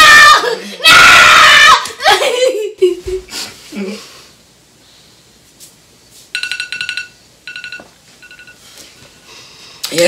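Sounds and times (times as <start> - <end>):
electronic ringtone trill: 6.4 - 8.6.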